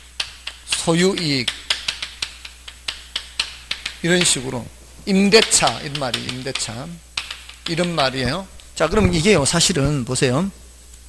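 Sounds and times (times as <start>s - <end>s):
chalk tapping on chalkboard: 0.0s - 4.5s, 5.3s - 10.1s.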